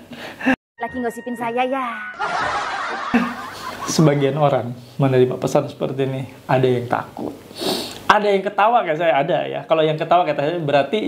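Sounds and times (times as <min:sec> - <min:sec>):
person laughing: 0:02.2 - 0:04.4.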